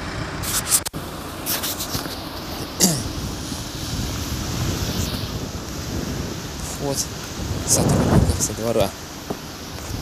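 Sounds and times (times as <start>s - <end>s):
wind buffeting microphone: 3.0s - 10.0s.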